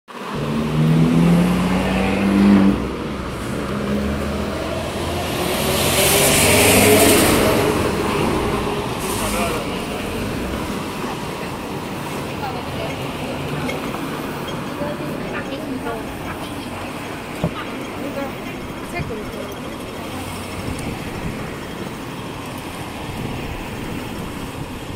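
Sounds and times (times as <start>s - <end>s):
steady roadway noise: 0.1s - 24.9s
vehicle passing by: 0.2s - 14.4s.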